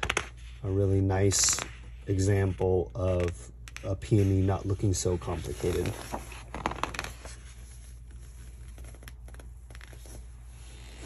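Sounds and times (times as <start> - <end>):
steady low hum: 0.0 - 11.0
paper page rustling: 1.3 - 11.0.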